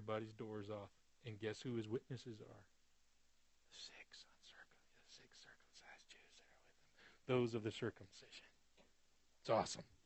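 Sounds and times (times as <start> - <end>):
faint whispered speech: 3.7 - 8.6.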